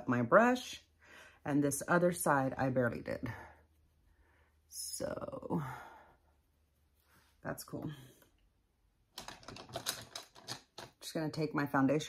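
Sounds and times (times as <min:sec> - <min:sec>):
makeup brushes clattering: 0:09.1 - 0:11.0.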